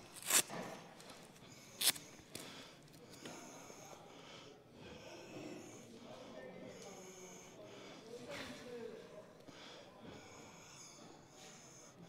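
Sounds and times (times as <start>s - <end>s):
gloves scratchy rasps: 0.0s - 2.6s.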